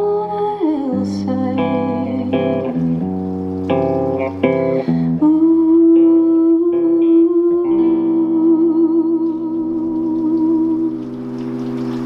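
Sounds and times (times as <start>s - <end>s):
acoustic and electric guitars: 0.0s - 12.0s.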